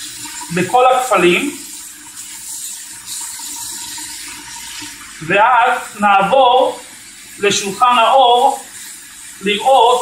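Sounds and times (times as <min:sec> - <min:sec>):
kitchen tap running: 0:00.0 - 0:10.0.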